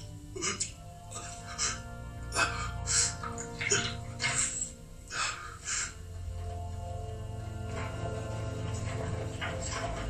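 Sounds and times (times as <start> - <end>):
low film score drone: 0.0 - 10.0.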